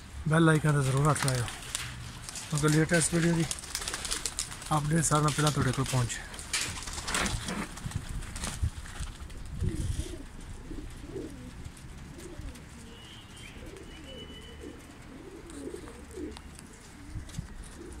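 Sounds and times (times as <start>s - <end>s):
pigeons cooing: 9.3s - 18.0s.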